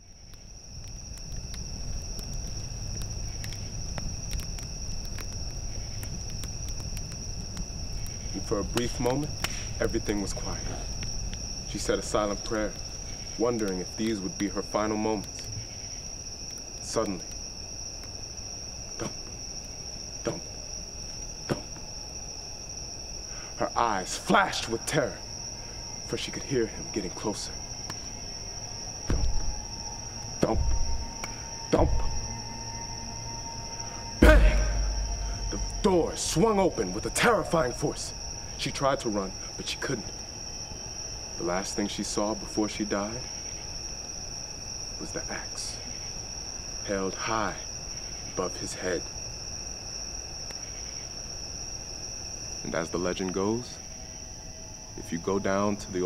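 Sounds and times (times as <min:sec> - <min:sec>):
sharp crackles: 0:00.0 - 0:23.5, 0:25.6 - 0:40.0
crickets chirping: 0:00.0 - 0:56.0
low rumble: 0:29.1 - 0:37.2
person speaking: 0:34.2 - 0:37.8.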